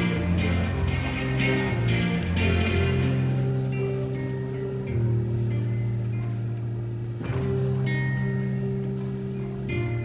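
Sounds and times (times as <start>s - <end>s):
guitar chords: 0.0s - 10.0s.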